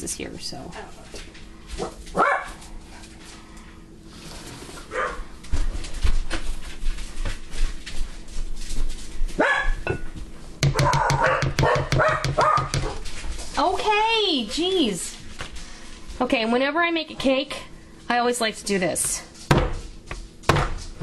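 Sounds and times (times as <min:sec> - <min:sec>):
dog barking: 0:01.8 - 0:02.6, 0:04.9 - 0:05.3, 0:09.4 - 0:09.8, 0:10.7 - 0:13.0.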